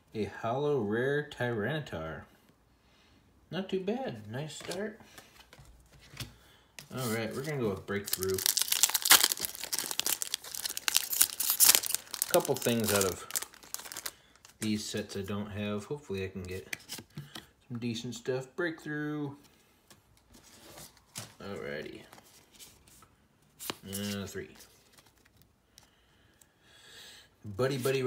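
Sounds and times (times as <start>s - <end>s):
cards sliding and rustling: 4.6s - 14.7s, 16.4s - 17.5s, 19.9s - 25.5s, 27.7s - 28.0s
foil wrapper crinkling torn open: 6.9s - 14.7s.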